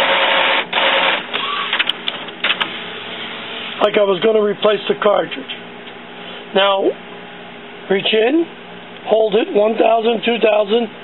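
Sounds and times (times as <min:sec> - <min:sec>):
printer carriage motor running: 0:00.0 - 0:05.5.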